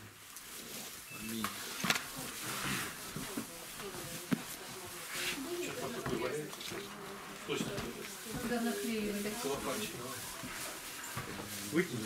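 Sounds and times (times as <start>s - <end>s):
people shuffling at a table: 0.0s - 12.0s.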